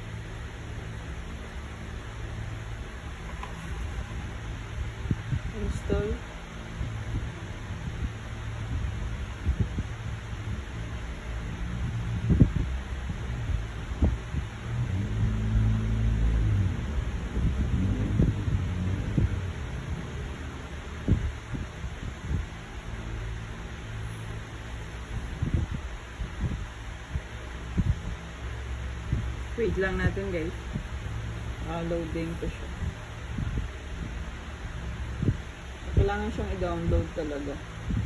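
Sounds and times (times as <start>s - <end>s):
low hum: 0.0s - 38.0s
phone microphone handling rumble: 3.1s - 5.5s.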